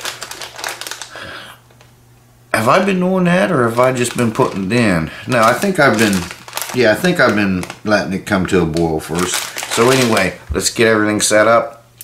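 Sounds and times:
plastic package crinkling: 0:00.0 - 0:01.9, 0:02.6 - 0:11.3
steady low hum: 0:00.1 - 0:12.0.

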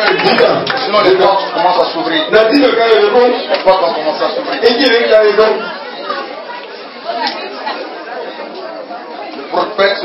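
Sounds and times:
indistinct chatter in a hall: 0:00.0 - 0:10.0.

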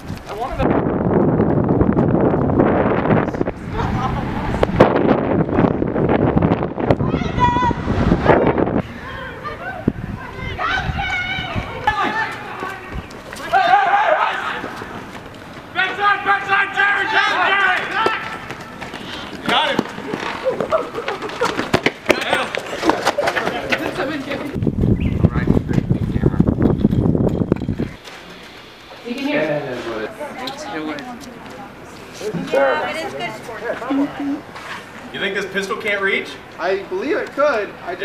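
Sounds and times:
wind buffeting microphone: 0:00.0 - 0:13.4, 0:22.7 - 0:28.0
people yelling and shouting: 0:06.8 - 0:24.6
running footsteps: 0:10.4 - 0:29.9.

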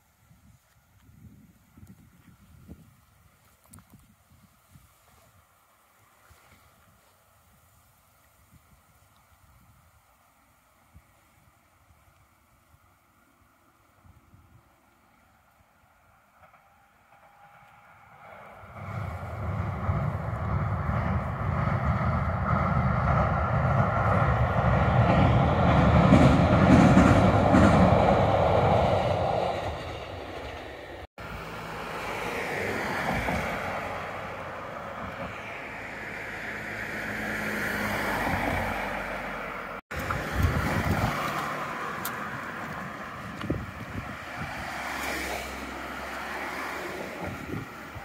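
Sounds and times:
wind on microphone: 0:00.0 - 0:05.6, 0:18.2 - 0:31.1, 0:32.6 - 0:36.2, 0:39.9 - 0:45.5, 0:46.2 - 0:48.0
train rumbling over steel bridge: 0:14.5 - 0:48.0.

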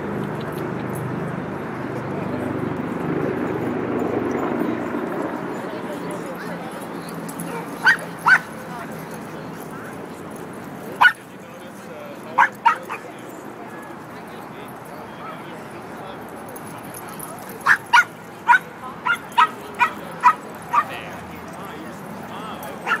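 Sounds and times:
small dog yapping: 0:07.8 - 0:08.5, 0:12.4 - 0:13.0, 0:17.6 - 0:20.9.

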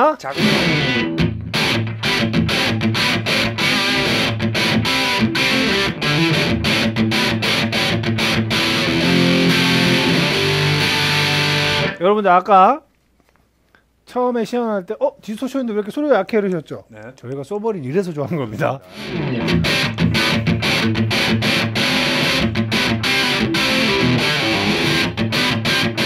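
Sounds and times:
distorted electric guitar chords: 0:00.3 - 0:12.0, 0:18.9 - 0:26.0.

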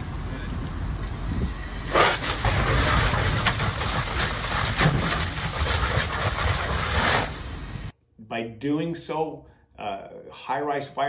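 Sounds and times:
fire burning with low rumble: 0:00.0 - 0:07.9
steam hissing: 0:01.1 - 0:07.9
water spray rushing: 0:01.9 - 0:07.9.

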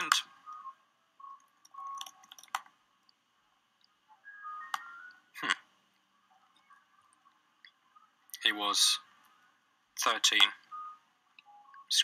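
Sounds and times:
computer keyboard clicks: 0:01.4 - 0:02.7
faint high tones: 0:03.9 - 0:12.0.

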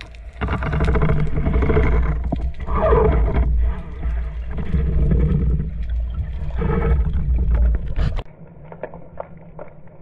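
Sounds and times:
low underwater rumble: 0:00.0 - 0:10.0.

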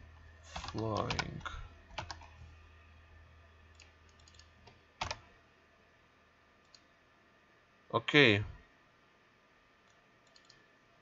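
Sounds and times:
computer mouse clicks: 0:00.5 - 0:02.4, 0:03.7 - 0:05.3, 0:06.6 - 0:06.9, 0:09.8 - 0:10.7.

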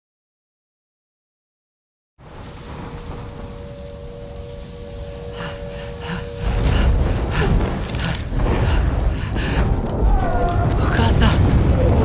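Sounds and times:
rushing noise like rain: 0:02.2 - 0:12.0
crackling rattles: 0:02.3 - 0:12.0
faint steady tone: 0:02.6 - 0:07.4.

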